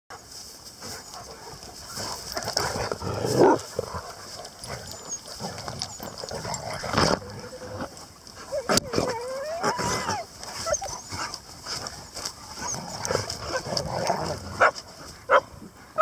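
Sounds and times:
dog digging and scraping: 0:00.8 - 0:09.2, 0:10.5 - 0:15.0.

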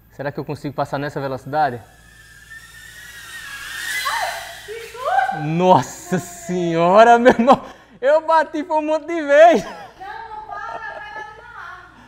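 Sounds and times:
drone propellers whining: 0:00.0 - 0:07.0.

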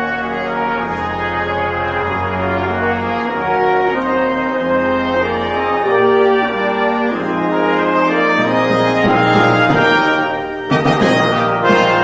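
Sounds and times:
brass ensemble sustained chords: 0:00.0 - 0:12.0.

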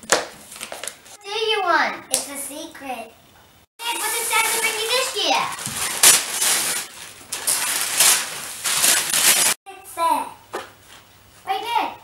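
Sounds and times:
child's voice: 0:01.2 - 0:03.2, 0:03.8 - 0:05.6, 0:09.7 - 0:10.4, 0:11.4 - 0:12.0
wrapping paper ripping and crumpling: 0:03.8 - 0:09.6.

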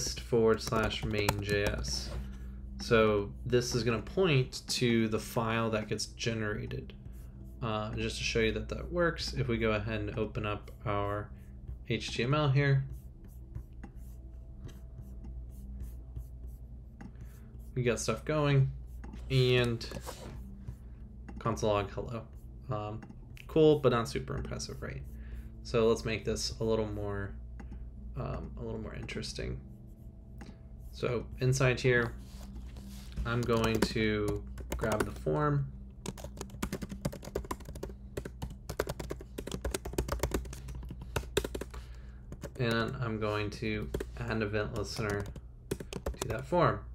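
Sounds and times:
low steady hum: 0:00.0 - 0:46.9
computer mouse clicking: 0:00.5 - 0:02.1, 0:33.2 - 0:35.2, 0:36.1 - 0:43.0, 0:43.8 - 0:46.4
mouse sliding on desk: 0:19.3 - 0:20.4.

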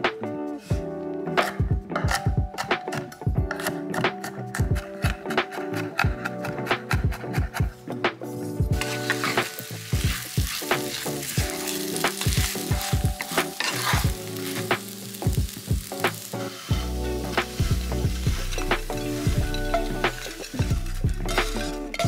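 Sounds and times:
light music: 0:00.0 - 0:22.0
spatula scraping a pan: 0:08.8 - 0:14.9, 0:16.2 - 0:22.0
gnocchi sizzling in oil: 0:08.8 - 0:22.0.

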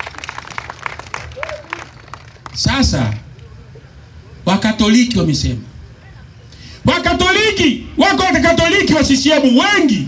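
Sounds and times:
crowd applauding: 0:00.0 - 0:03.2.

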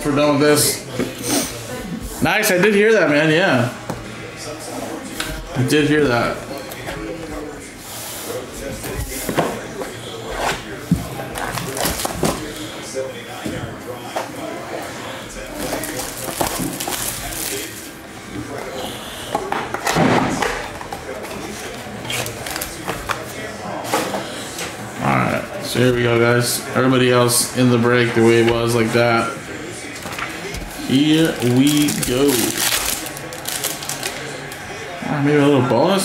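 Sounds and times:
shrink wrap crinkling and tearing: 0:11.4 - 0:12.6, 0:15.5 - 0:17.9, 0:22.0 - 0:23.2, 0:30.7 - 0:34.6.

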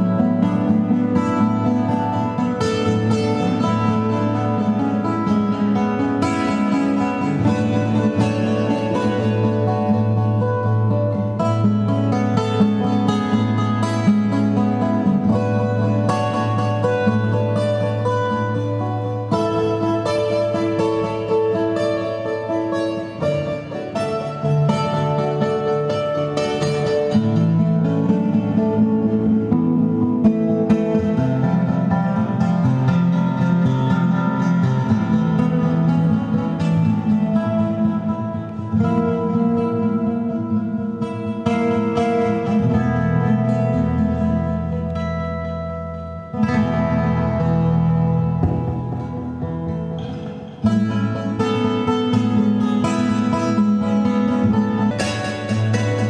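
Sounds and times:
flamenco acoustic guitar: 0:00.0 - 0:56.0.

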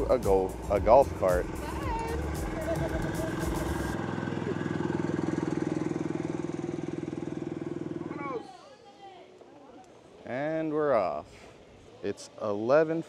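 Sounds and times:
small engine idling: 0:00.0 - 0:08.4.

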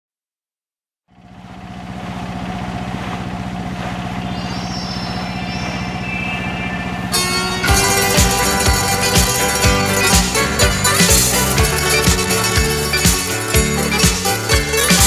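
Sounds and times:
motorboat engine running: 0:01.1 - 0:15.0
music with a beat: 0:07.2 - 0:15.0.

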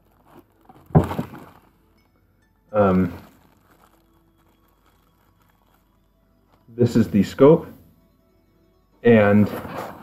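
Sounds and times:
plastic wrap rustling: 0:00.0 - 0:07.8.

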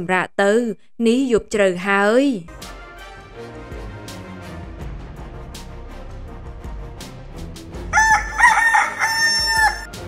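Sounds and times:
quiet background music: 0:01.3 - 0:10.0
rooster crowing: 0:07.9 - 0:10.0.

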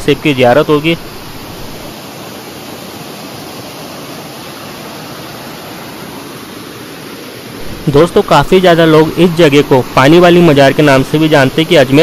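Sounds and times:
small waterfall rushing over rocks: 0:00.0 - 0:12.0.

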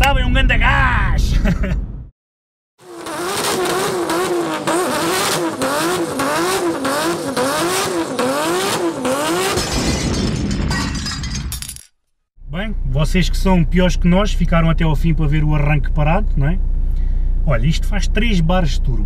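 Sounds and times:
vehicle engine revving: 0:02.8 - 0:09.6.

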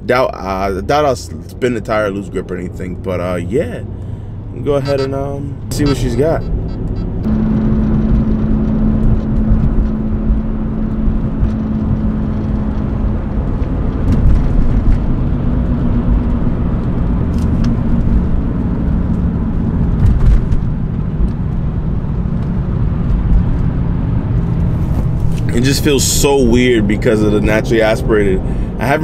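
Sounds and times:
road and tyre rumble: 0:00.0 - 0:29.0
car engine accelerating: 0:00.1 - 0:29.0.

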